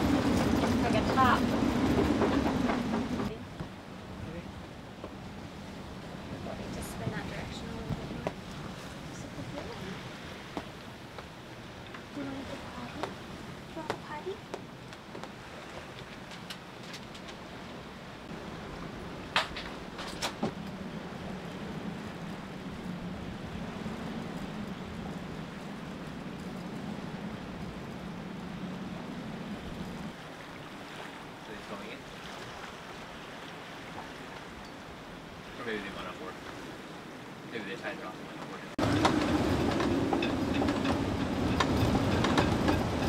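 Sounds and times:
choppy water: 0:00.0 - 0:43.0
storm wind: 0:00.0 - 0:43.0.

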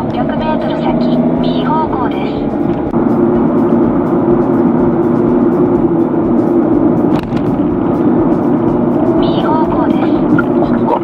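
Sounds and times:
background music with held tones: 0:00.0 - 0:11.0
car road and engine noise: 0:00.0 - 0:11.0.

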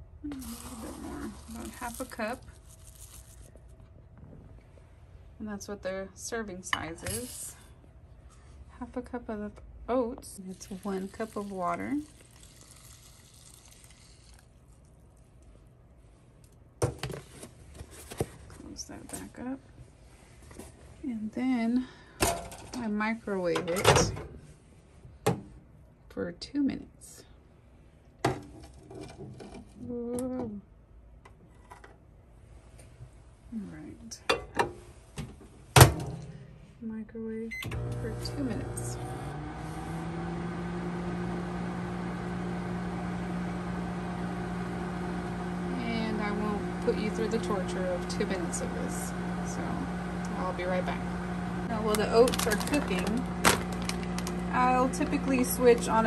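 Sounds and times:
dry oats rustling: 0:00.4 - 0:03.6
low steady hum: 0:29.0 - 0:56.0
plastic cup clicks and rustles: 0:51.9 - 0:54.4.

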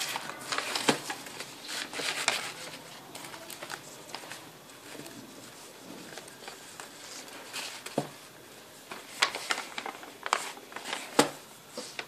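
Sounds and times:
paper bag rustling and crinkling: 0:00.0 - 0:12.0.

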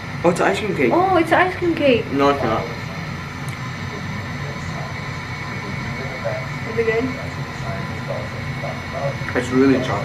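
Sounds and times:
low room hum with hiss: 0:00.0 - 0:10.0.

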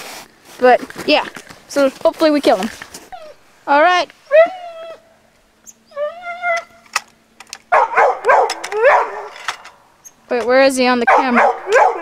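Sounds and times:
dog whining and howling: 0:03.1 - 0:03.4, 0:04.2 - 0:06.8, 0:07.8 - 0:09.4, 0:11.5 - 0:12.0
dog yipping and barking: 0:05.7 - 0:06.8, 0:07.7 - 0:09.4, 0:11.1 - 0:12.0.

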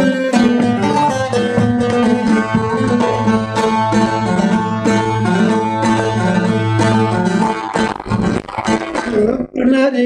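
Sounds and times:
open string drone: 0:00.0 - 0:09.2
plucked lute melody: 0:00.0 - 0:09.5.

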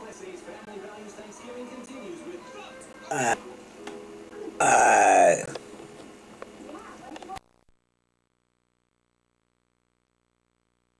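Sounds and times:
person burping loudly: 0:03.1 - 0:03.4, 0:04.6 - 0:05.6.

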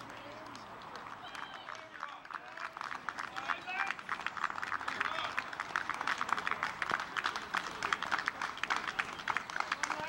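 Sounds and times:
people clapping: 0:00.0 - 0:10.0.

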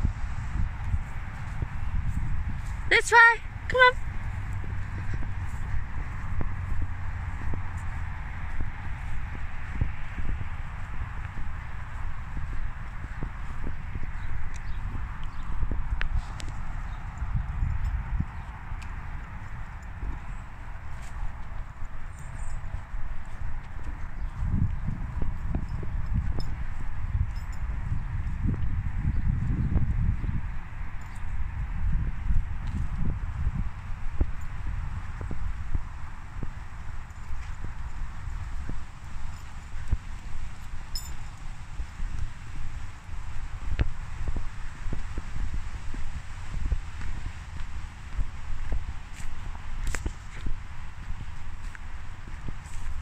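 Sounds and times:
footsteps on grass: 0:00.0 - 0:03.3, 0:04.0 - 0:30.4, 0:31.4 - 0:53.0.

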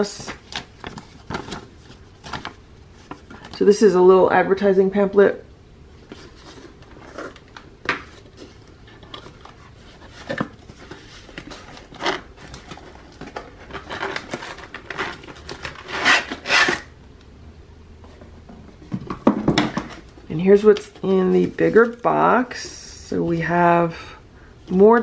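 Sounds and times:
cardboard rubbing and scraping: 0:08.2 - 0:16.9.

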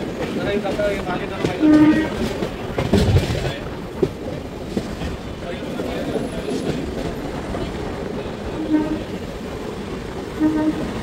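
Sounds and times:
train rumbling: 0:00.0 - 0:11.0
wheels clacking over rail joints: 0:00.0 - 0:11.0
train horn blast: 0:01.6 - 0:02.3, 0:08.5 - 0:09.2, 0:10.4 - 0:11.0.

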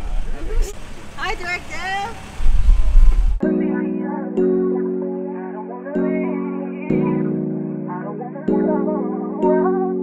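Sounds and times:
steady low rumble: 0:00.0 - 0:04.6
people talking and calling out: 0:03.4 - 0:10.0.

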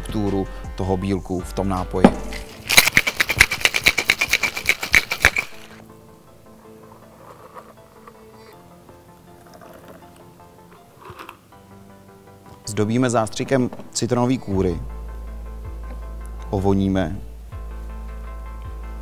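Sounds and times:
soft background music: 0:00.0 - 0:19.0
cocktail shaker knocked shut: 0:02.0 - 0:05.5
ice rattling in cocktail shaker: 0:02.4 - 0:05.8.

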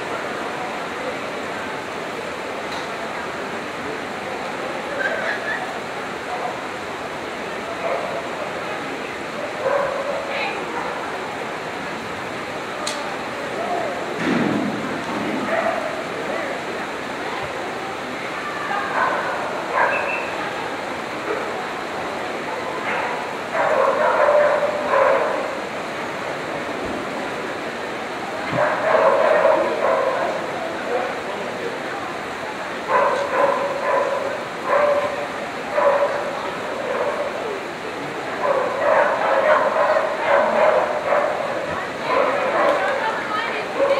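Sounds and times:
steady background noise: 0:00.0 - 0:43.9
dog barking and yipping: 0:19.8 - 0:20.3.

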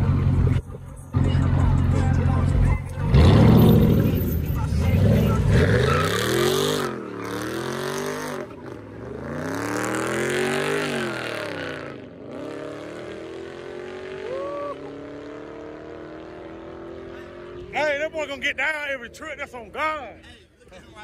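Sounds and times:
car engine revving: 0:00.0 - 0:19.0
tires screeching: 0:00.0 - 0:19.5.

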